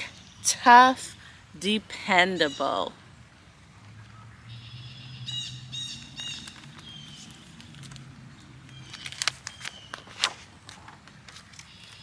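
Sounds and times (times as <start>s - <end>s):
bird twittering and chirping: 3.6s - 7.8s.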